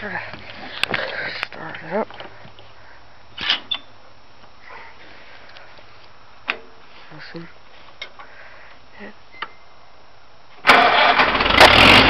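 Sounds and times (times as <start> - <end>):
low steady background noise: 0.0 - 11.6.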